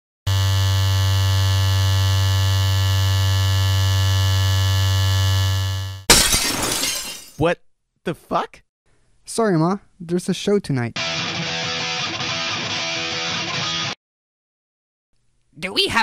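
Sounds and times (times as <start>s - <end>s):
electric hair clippers buzzing: 0.3s - 6.1s
shattering crash: 6.1s - 7.4s.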